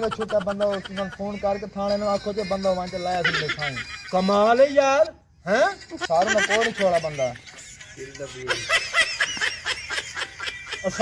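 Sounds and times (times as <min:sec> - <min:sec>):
laugh track snickering: 0:00.0 - 0:04.8, 0:05.6 - 0:11.0.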